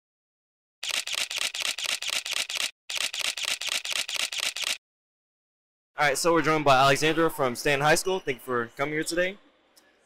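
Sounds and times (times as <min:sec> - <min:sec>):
camera shutters clicking: 0:00.8 - 0:04.8.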